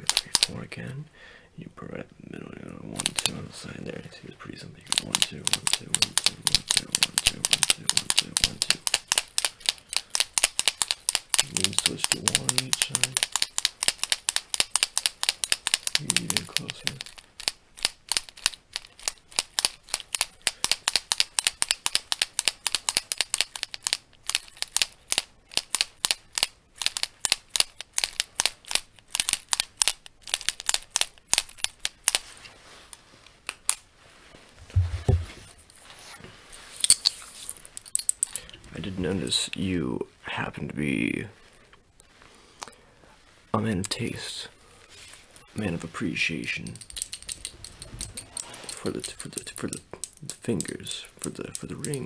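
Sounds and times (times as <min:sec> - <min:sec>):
pen clicking against metal rings: 0:00.0 - 0:00.5, 0:04.9 - 0:32.2, 0:46.6 - 0:52.0.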